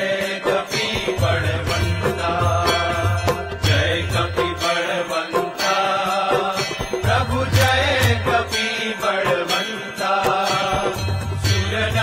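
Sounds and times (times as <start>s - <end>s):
instrumental accompaniment: 0.0s - 12.0s
person chanting devotional song: 0.0s - 12.0s.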